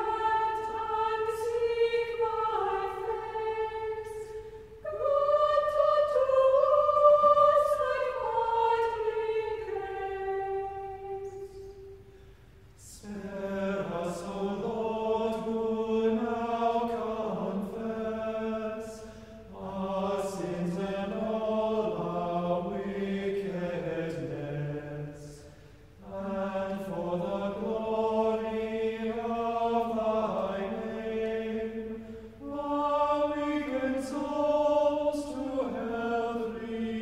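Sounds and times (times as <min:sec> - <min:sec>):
choir singing chant in unison: 0:00.0 - 0:11.9, 0:12.8 - 0:37.0.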